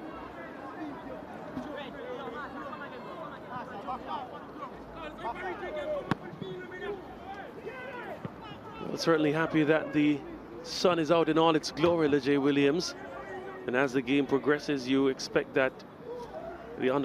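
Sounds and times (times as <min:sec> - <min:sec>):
voices shouting and chattering: 0:00.0 - 0:17.0.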